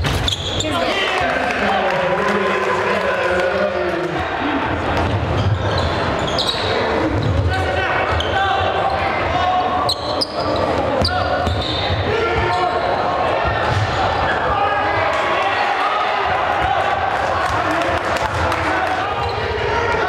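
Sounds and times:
crowd talking and shouting: 0.0 - 20.0.

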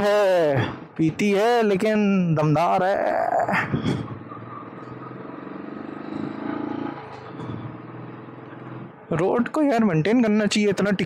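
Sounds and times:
motorcycle engine climbing hill: 3.6 - 9.6.

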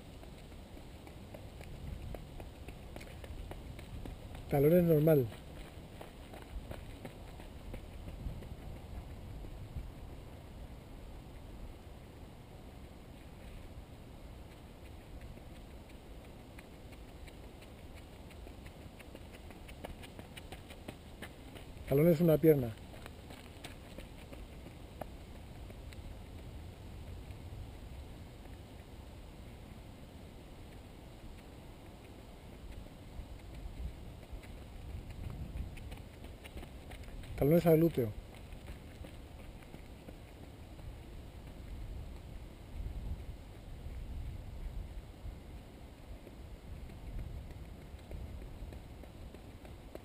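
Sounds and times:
footsteps on dirt path: 0.0 - 10.8, 12.8 - 29.8, 30.5 - 50.0
low background noise: 0.0 - 50.0.

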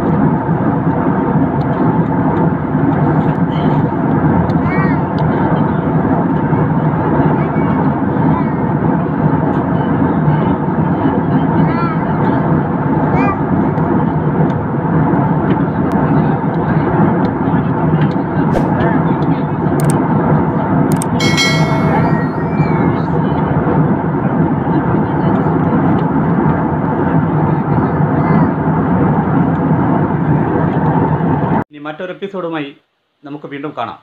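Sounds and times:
brief pitched sound: 21.2 - 22.8.

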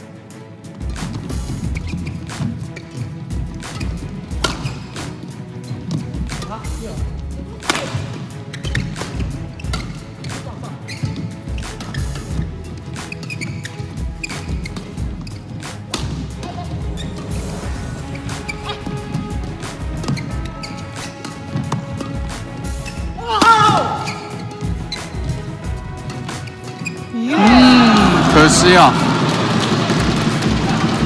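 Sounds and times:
background music: 0.0 - 31.0
badminton rackets hitting shuttlecock: 2.2 - 6.8, 7.5 - 16.8, 18.4 - 27.5.

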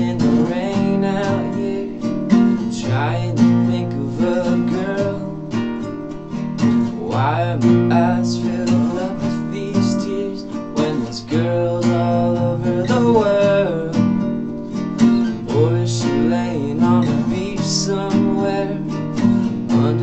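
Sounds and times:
man singing: 0.0 - 5.9, 6.6 - 14.4, 15.0 - 20.0
acoustic guitars strummed: 0.0 - 20.0.

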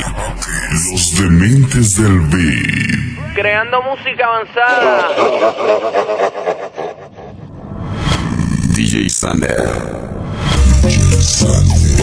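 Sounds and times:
noisy swell: 3.2 - 8.9.

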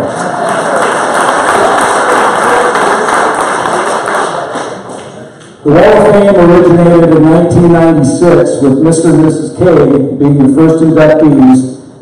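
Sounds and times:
audience applauding: 0.0 - 5.3.

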